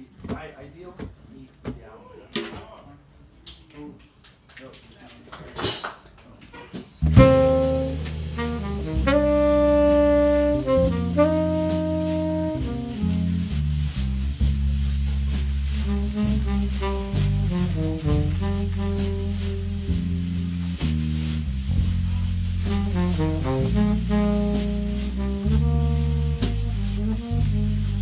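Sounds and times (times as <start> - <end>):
drums: 4.3 - 28.0
tenor saxophone long notes: 7.0 - 13.6, 15.7 - 20.8, 22.4 - 28.0
electric bass: 7.0 - 28.0.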